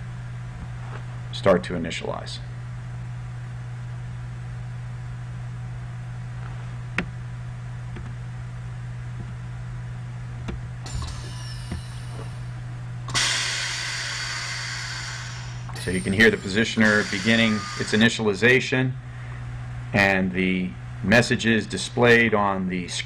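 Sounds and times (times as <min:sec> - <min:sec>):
steady low hum: 0:00.0 - 0:23.0
compressed air hissing: 0:13.1 - 0:18.3.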